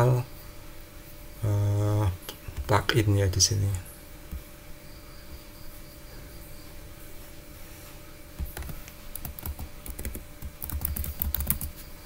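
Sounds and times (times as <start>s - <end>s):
keyboard key clicks: 8.4s - 11.7s.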